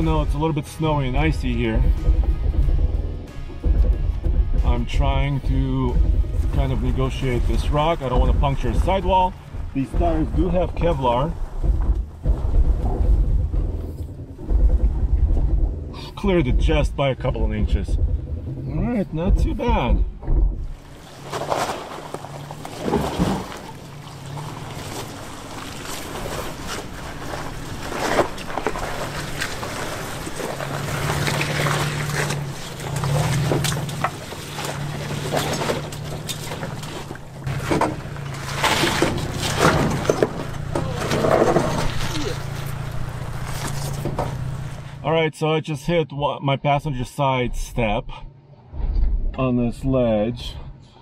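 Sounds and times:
tyres crunching over rocks and gravel: 0.0s - 45.1s
truck engine rumbling: 0.0s - 46.2s.

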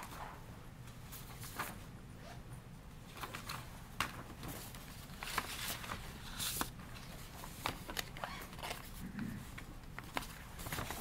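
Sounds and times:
paper rustling: 3.1s - 9.0s, 9.6s - 11.0s.

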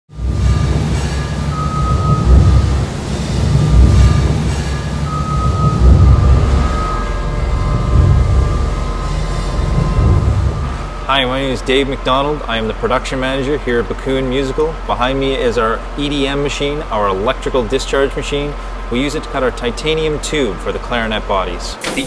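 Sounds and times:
steady high whine: 0.1s - 20.6s
loud mechanical rumble: 0.1s - 22.0s.

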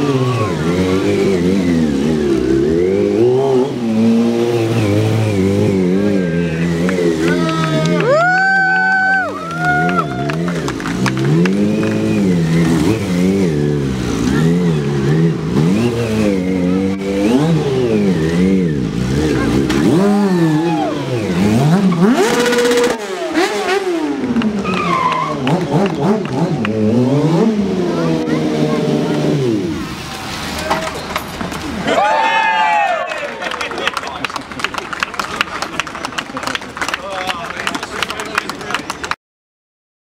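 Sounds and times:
motorcycle engine revving: 0.0s - 8.0s, 9.5s - 31.4s.

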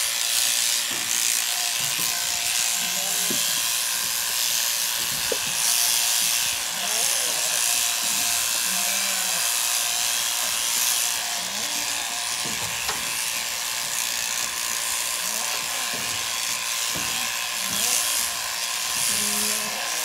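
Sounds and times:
electric shears running: 0.0s - 20.0s.

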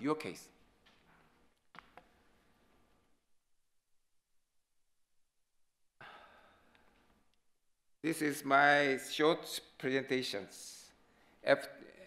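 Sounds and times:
man sighing into microphone: 6.0s - 6.8s.

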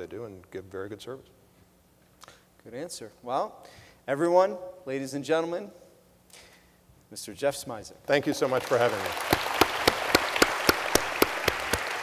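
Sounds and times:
audience applauding: 8.3s - 12.0s
loud evenly spaced claps: 8.3s - 12.0s.

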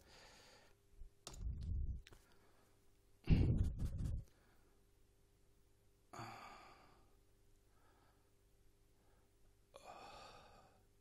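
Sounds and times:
man sighing: 6.1s - 7.0s.

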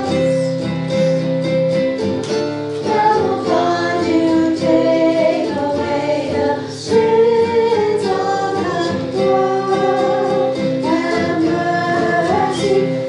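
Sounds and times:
voices singing a hymn: 2.8s - 13.0s.

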